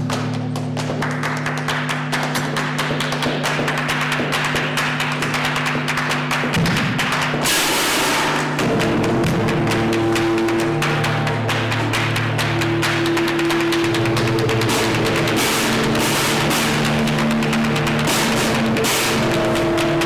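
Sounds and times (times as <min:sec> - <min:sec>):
harsh noise: 0:00.0 - 0:20.0
electric guitar droning tones: 0:08.3 - 0:20.0.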